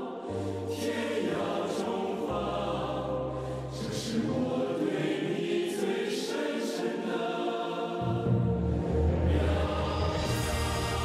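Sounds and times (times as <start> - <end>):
choir singing slow song: 0.0 - 11.0
deep sustained bass: 8.3 - 11.0.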